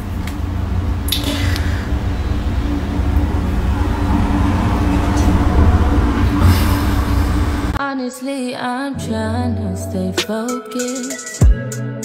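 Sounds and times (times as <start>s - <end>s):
constant hum: 0.0s - 7.8s
steady low rumble: 0.0s - 7.8s.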